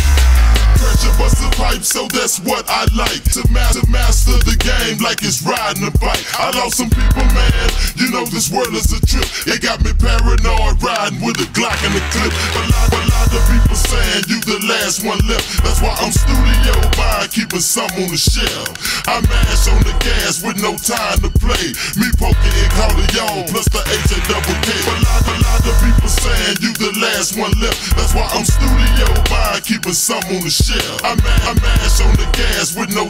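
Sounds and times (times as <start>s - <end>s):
deep bass line: 0.0s - 2.0s, 2.9s - 5.0s, 6.8s - 8.0s, 8.7s - 10.9s, 11.6s - 14.3s, 15.2s - 17.3s, 19.1s - 26.6s, 27.6s - 29.6s, 31.1s - 32.7s
slowed rap vocals: 0.0s - 33.0s.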